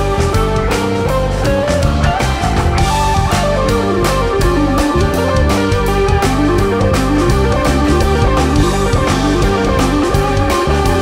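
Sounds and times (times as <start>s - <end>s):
electric guitar line: 0.0s - 11.0s
rock band playing live: 0.0s - 11.0s
steady drum beat: 0.0s - 11.0s.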